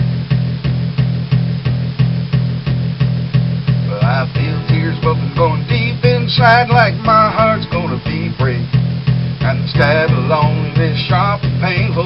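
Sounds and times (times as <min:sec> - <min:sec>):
bass line: 0:00.0 - 0:12.0
acoustic guitar strumming: 0:02.4 - 0:12.0.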